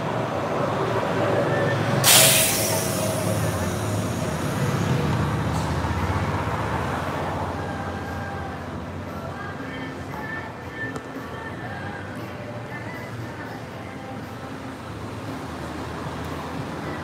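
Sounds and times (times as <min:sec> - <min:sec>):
bus engine running low: 0:00.0 - 0:17.0
street traffic: 0:00.0 - 0:17.0
air brakes hissing: 0:02.0 - 0:05.6.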